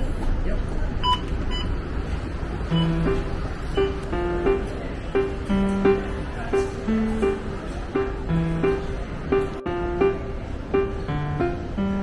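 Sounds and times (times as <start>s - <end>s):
bus engine rumble: 0.0s - 12.0s
short electronic beeps: 1.0s - 1.7s, 2.7s - 3.2s.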